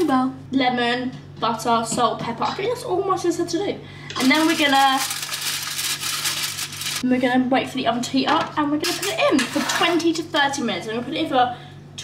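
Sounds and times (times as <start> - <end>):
aluminium foil crinkling: 4.2 - 7.0.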